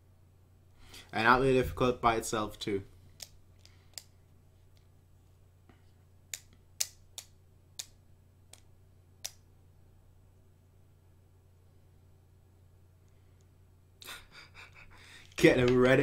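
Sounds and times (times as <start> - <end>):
faint low hum: 0.0 - 16.0.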